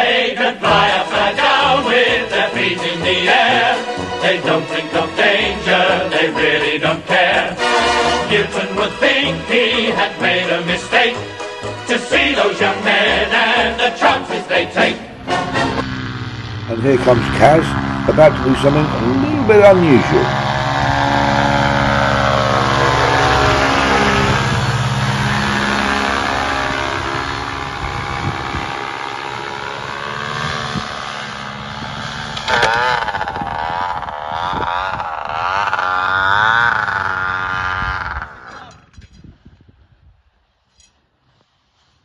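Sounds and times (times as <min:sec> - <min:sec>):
paramotor engine and propeller: 0:00.0 - 0:39.4.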